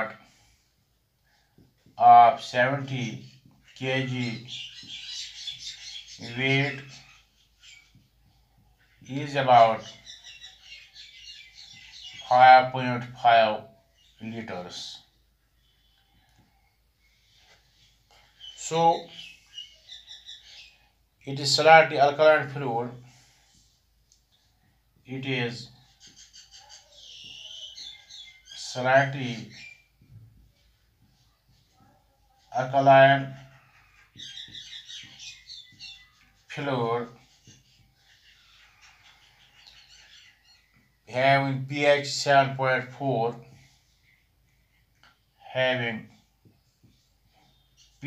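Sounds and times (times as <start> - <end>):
marker squeaking on whiteboard: 1.4 - 13.2, 15.1 - 21.0, 22.4 - 41.2, 43.4 - 48.0
whiteboard marker squeaking: 6.8 - 8.2, 25.7 - 28.6, 29.4 - 36.5.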